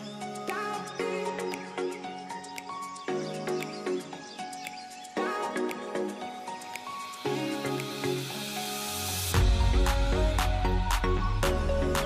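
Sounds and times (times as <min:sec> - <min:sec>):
background music with held chords: 0:00.0 - 0:12.0.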